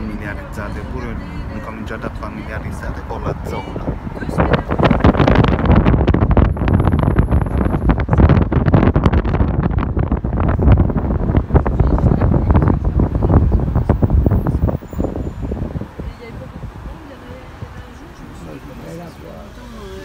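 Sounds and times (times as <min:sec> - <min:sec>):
wind buffeting microphone: 0:00.0 - 0:18.4
road noise: 0:00.0 - 0:20.0.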